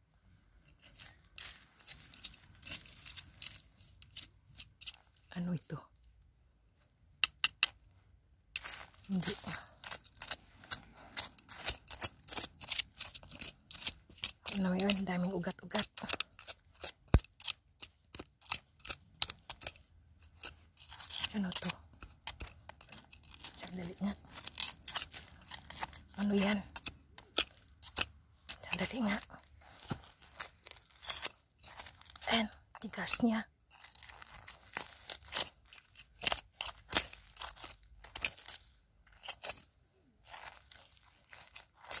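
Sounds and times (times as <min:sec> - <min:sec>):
digging in gravelly soil: 0:00.6 - 0:05.7, 0:08.5 - 0:42.0.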